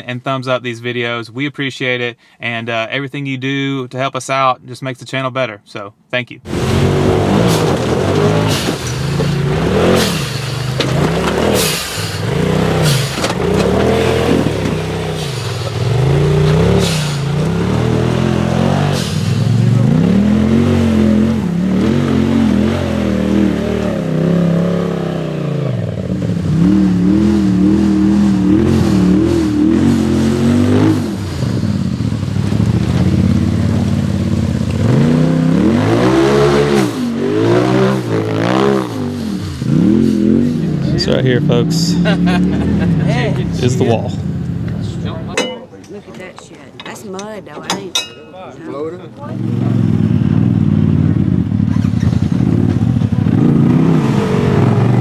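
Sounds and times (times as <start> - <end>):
off-road engines revving: 6.5 - 45.5, 46.2 - 55.0.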